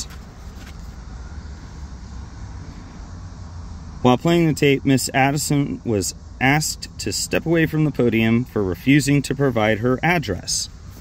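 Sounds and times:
low machine drone with hiss: 0:00.0 - 0:11.0.

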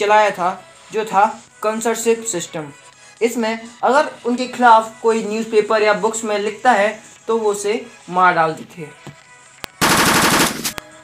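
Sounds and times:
gun clicks: 0:09.6 - 0:10.9
rapid burst of gunshots: 0:09.8 - 0:10.8.

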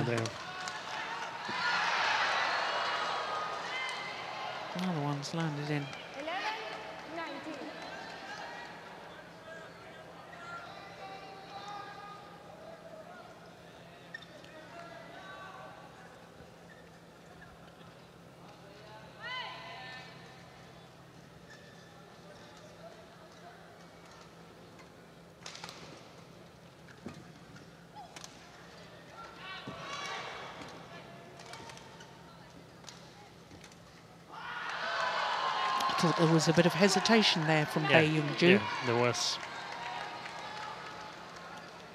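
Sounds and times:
crowd cheering and clapping: 0:00.0 - 0:04.8, 0:34.3 - 0:41.9.

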